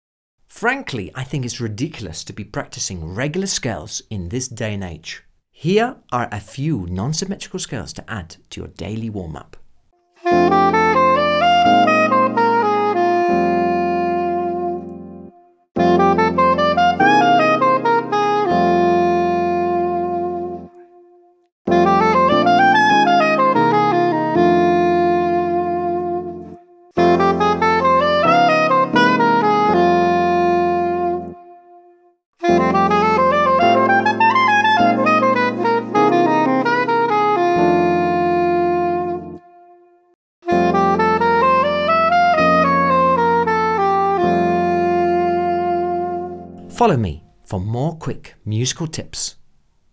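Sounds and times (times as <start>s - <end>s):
soprano saxophone playing scales: 10.0s - 46.8s.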